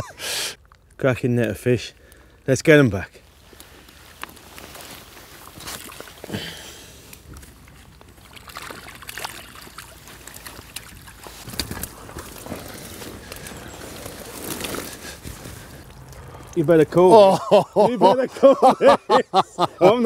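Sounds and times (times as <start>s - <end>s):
water sloshing and splashing: 4.3s - 16.6s.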